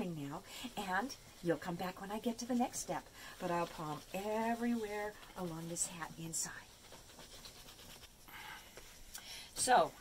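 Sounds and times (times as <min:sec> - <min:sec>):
hands rubbing wet soapy felt: 0:00.2 - 0:09.1.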